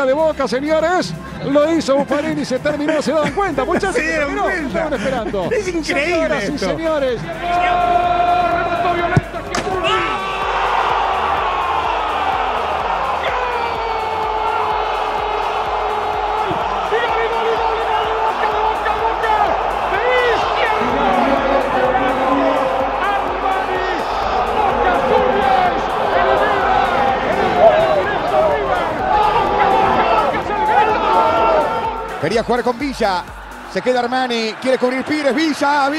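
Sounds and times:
background music: 0.0s - 35.9s
men shouting and celebrating: 0.0s - 35.9s
held musical tone: 14.0s - 34.4s.

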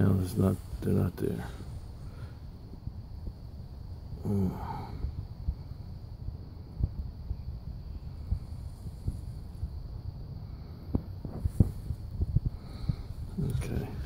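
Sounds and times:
low rumble: 0.6s - 14.0s.

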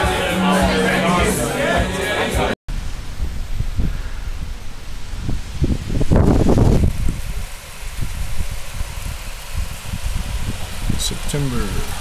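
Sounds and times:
wind buffeting microphone: 2.7s - 12.0s.

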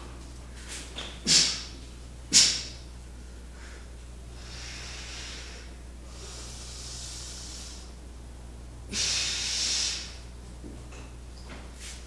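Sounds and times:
low mains hum: 0.0s - 12.0s
forceful hissing breaths: 3.5s - 8.0s, 8.9s - 10.2s.

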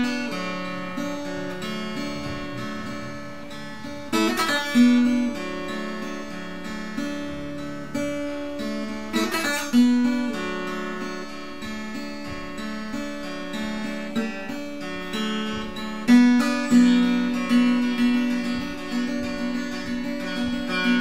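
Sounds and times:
acoustic guitar picking: 0.0s - 21.0s
strummed guitar chord: 0.0s - 21.0s.

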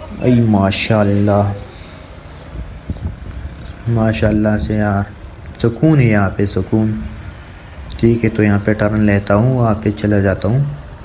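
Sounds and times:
vehicle driving on road: 0.0s - 11.0s.

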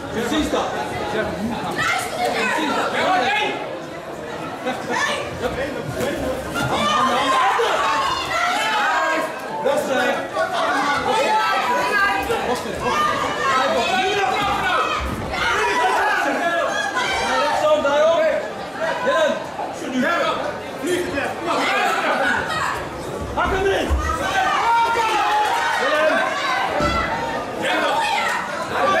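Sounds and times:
people talking and calling out: 0.0s - 29.0s.

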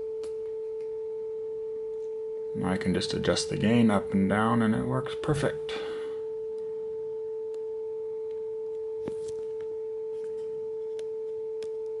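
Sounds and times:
sine-wave test tone: 0.0s - 12.0s.

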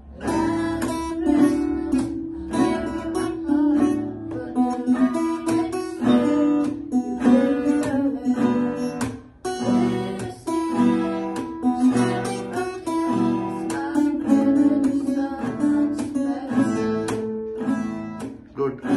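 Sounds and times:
girl singing: 0.0s - 18.1s
acoustic guitars strumming: 0.0s - 18.9s.

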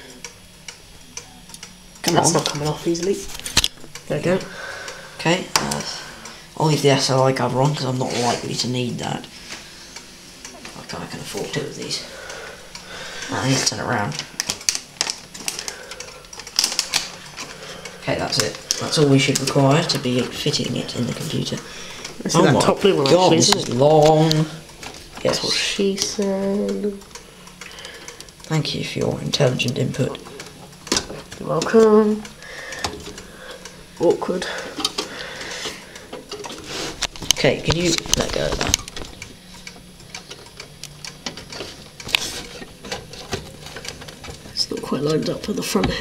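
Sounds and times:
rubbing and scraping handling noise: 34.7s - 39.1s, 41.3s - 46.0s.

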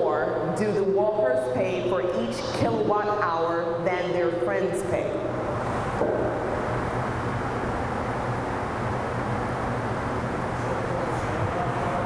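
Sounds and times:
low even hum: 0.0s - 12.0s.

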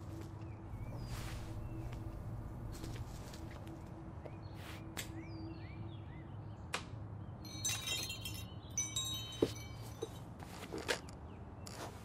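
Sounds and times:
chimes ringing: 7.4s - 10.4s.

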